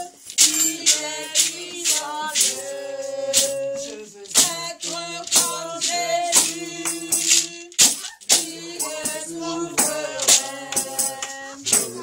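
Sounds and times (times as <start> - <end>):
shaken hand percussion: 0.0 - 12.0
worship music singing and instruments: 0.0 - 12.0.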